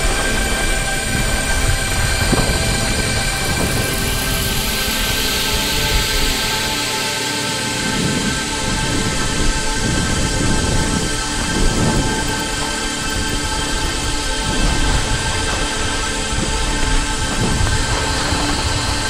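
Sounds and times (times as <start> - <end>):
background music of held notes: 0.0 - 19.0
steady rushing noise: 0.0 - 19.0.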